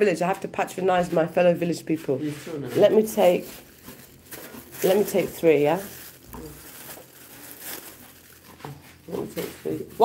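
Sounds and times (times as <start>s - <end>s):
plastic bags rustling: 1.1s - 10.0s.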